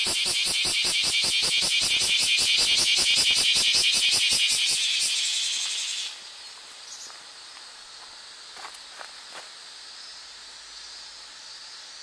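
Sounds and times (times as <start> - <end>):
cicada buzzing: 0.0 - 12.0.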